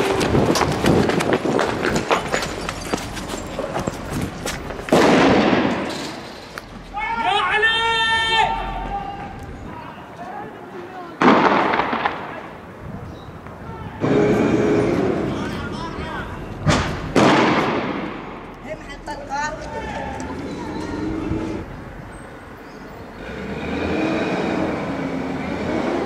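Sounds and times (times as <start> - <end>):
gunshots with echoing tail: 4.9 - 5.9, 11.2 - 12.6, 17.1 - 18.5
people shouting: 6.9 - 10.6.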